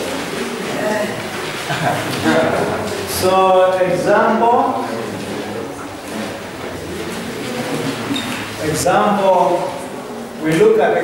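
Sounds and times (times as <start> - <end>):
room noise hiss and rumble: 0.0 - 11.0.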